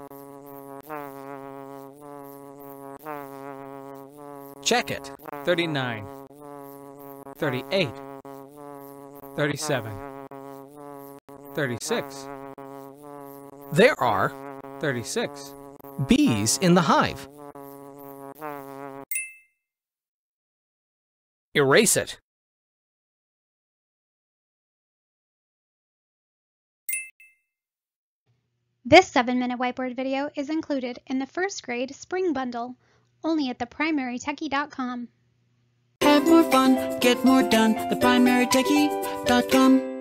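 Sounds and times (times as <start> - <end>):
cartoon bee buzzing: 0.0 - 19.1, 36.0 - 40.0.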